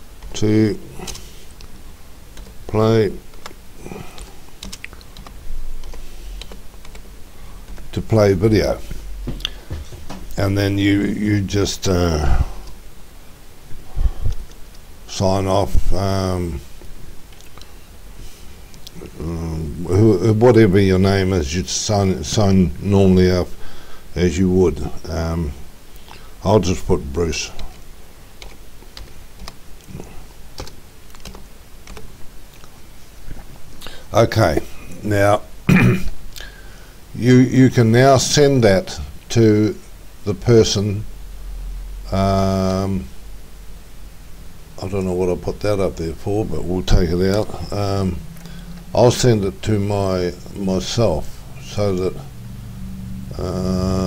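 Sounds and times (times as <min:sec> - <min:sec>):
computer keyboard typing: 0:04.2 - 0:07.0, 0:28.4 - 0:29.6, 0:30.6 - 0:32.1.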